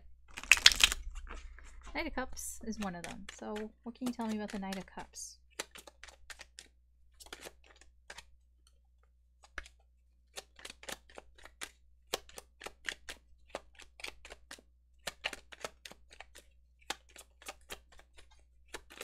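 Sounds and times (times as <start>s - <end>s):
cards being shuffled by hand: 0.3s - 19.0s.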